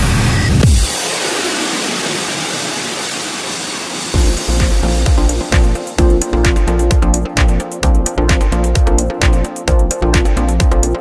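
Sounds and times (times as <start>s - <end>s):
deep falling bass swoop: 0.1s - 9.4s
hiss-like wash: 0.7s - 6.0s.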